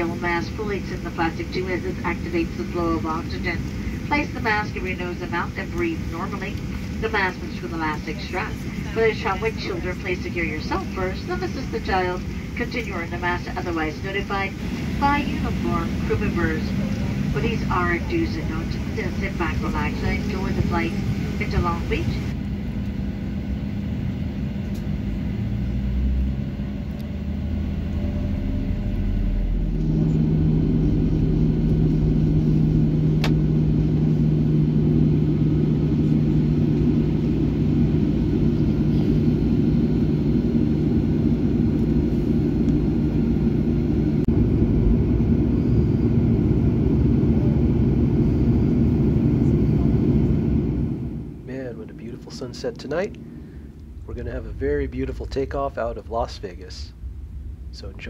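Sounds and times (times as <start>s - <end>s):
jet engine cabin hum: 0.0s - 58.0s.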